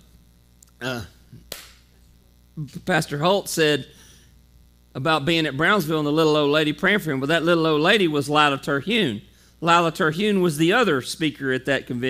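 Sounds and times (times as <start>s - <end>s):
low electrical hum: 0.0s - 12.0s
man speaking: 0.8s - 1.5s, 2.6s - 4.0s, 5.0s - 12.0s.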